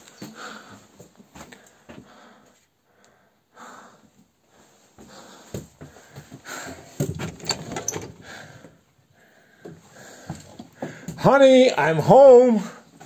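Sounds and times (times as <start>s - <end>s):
wooden door knocking and rattling: 6.9s - 8.4s.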